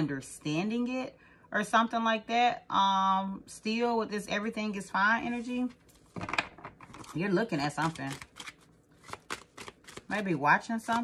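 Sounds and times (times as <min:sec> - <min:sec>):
cards being shuffled: 0:05.9 - 0:10.2.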